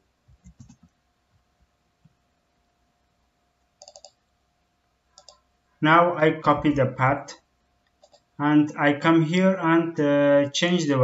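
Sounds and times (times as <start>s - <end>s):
computer mouse clicks: 0.3s - 0.9s, 3.8s - 4.2s, 5.2s - 5.4s, 7.8s - 8.3s
man's voice: 5.8s - 7.4s.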